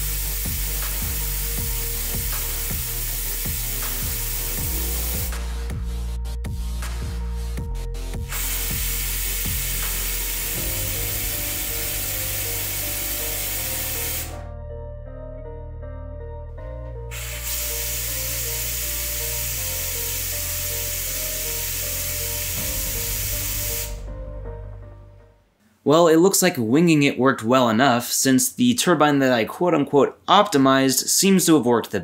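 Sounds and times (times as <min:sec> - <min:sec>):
compressed air hissing: 0:00.0 - 0:05.7, 0:08.2 - 0:14.5, 0:17.1 - 0:24.2
background music: 0:00.0 - 0:28.0.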